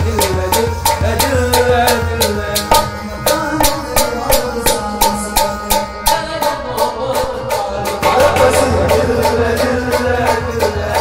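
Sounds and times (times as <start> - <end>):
goblet drum beat: 0.0 - 11.0
harmonium melody: 0.0 - 11.0.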